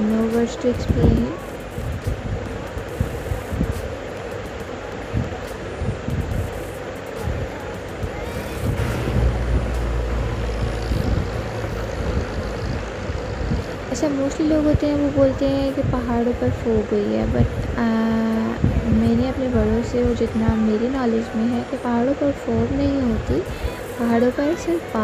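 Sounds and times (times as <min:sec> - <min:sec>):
car road and wind noise: 0:00.0 - 0:21.4, 0:22.1 - 0:25.0
wind buffeting microphone: 0:00.0 - 0:21.6, 0:22.2 - 0:25.0.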